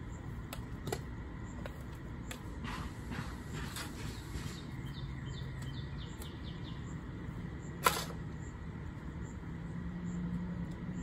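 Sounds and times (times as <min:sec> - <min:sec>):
low steady hum: 0:00.0 - 0:11.0
bird chirps: 0:04.0 - 0:07.8.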